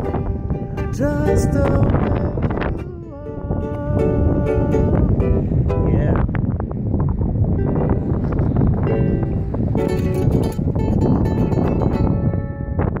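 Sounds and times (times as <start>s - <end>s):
ukulele strumming chords: 0.0s - 6.0s, 7.6s - 12.8s
wind buffeting microphone: 0.0s - 13.0s.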